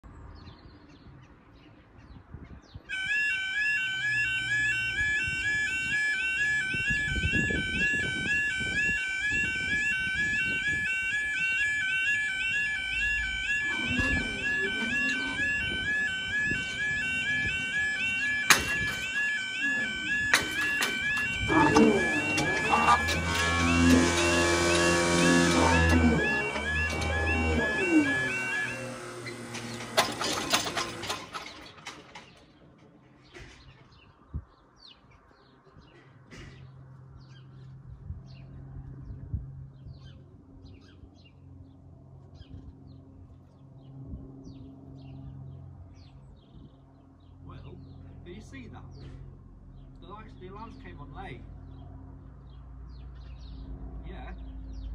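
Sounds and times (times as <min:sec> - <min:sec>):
level crossing alarm warbling: 0:02.9 - 0:32.4.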